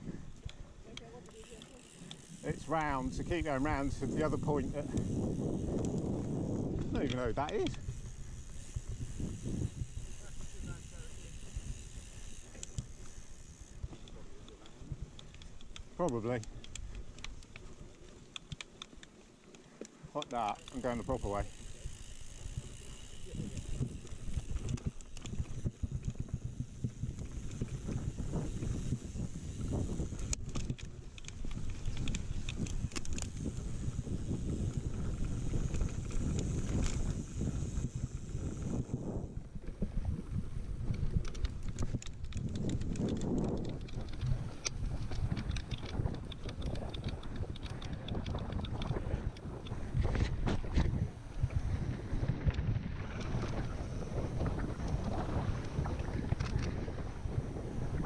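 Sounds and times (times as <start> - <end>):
wind rumbling on microphone: 0.0 - 18.6, 20.4 - 58.0
bike chain and frame rattling: 0.0 - 58.0.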